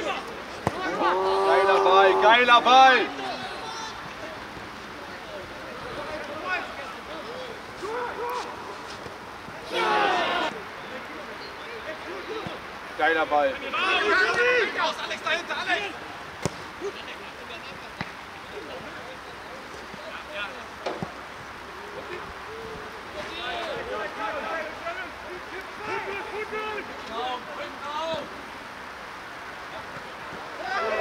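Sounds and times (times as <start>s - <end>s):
footballers shouting: 0.0s - 10.7s, 11.9s - 17.2s, 20.2s - 28.4s, 29.8s - 31.0s
outdoor noise: 0.0s - 31.0s.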